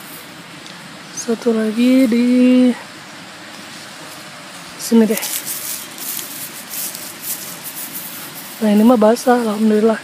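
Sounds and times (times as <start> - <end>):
hand digging in dry mulch: 4.1 - 9.6.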